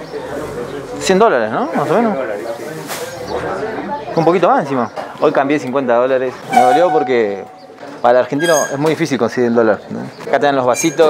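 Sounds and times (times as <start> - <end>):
voices talking indistinctly: 0.0 - 11.0.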